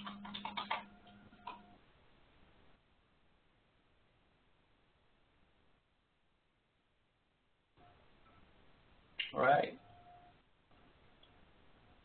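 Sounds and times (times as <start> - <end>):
computer keyboard typing: 0.0 - 1.8.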